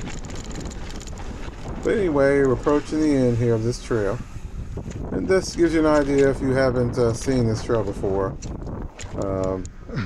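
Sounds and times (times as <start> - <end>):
bike clicks and rattles: 0.0 - 3.9, 4.7 - 9.8
bike tyres rolling on dirt: 0.0 - 9.6
wind buffeting microphone: 0.0 - 10.0.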